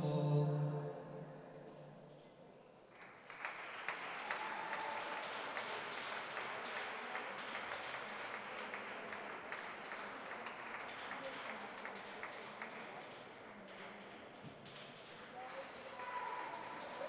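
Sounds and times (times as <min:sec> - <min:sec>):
small audience applauding: 0:02.7 - 0:17.0.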